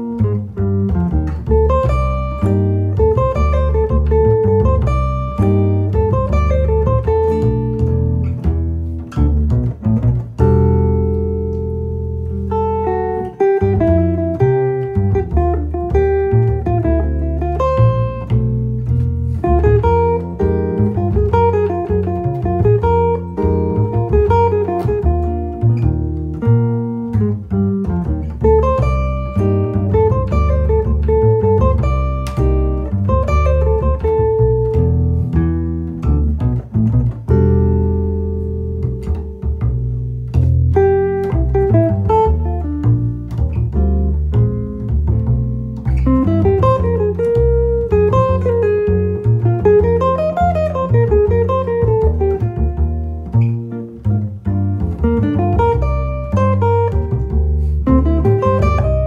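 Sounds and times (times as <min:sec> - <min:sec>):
double bass plucked: 0:00.0 - 0:59.0.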